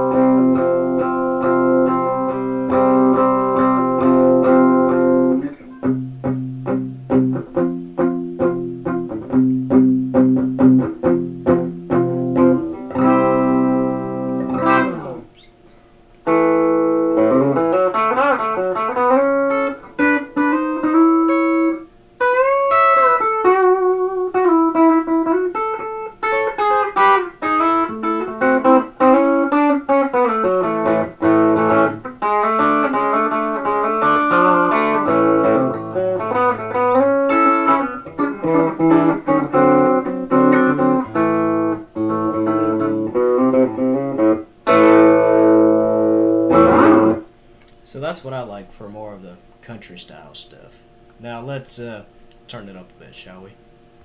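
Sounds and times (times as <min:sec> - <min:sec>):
distorted electric guitar lead: 0:00.0 - 0:15.5, 0:16.2 - 0:47.3.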